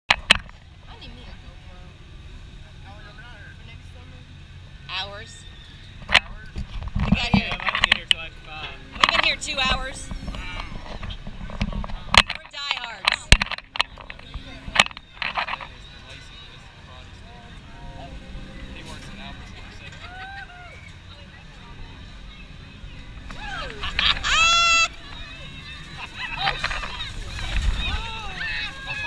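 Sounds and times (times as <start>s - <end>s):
low steady rumble: 0.1s - 29.0s
riders laughing and calling out: 19.8s - 21.0s, 23.2s - 29.0s.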